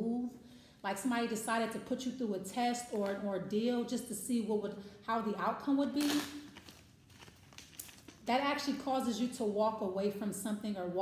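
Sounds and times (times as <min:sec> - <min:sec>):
cards being shuffled: 0:06.0 - 0:08.2
papery rustle: 0:06.1 - 0:08.3.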